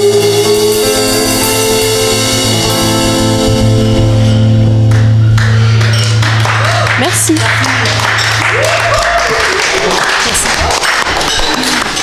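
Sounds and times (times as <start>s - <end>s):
rock band final chord: 0.0s - 8.5s
low bass note ringing: 1.1s - 6.4s
audience applause: 4.9s - 12.0s.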